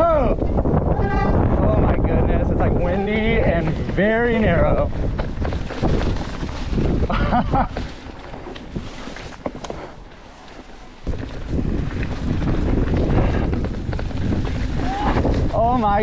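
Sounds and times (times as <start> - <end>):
wind buffeting microphone: 0.0 - 16.0
mountain bike rolling on dirt: 0.6 - 16.0.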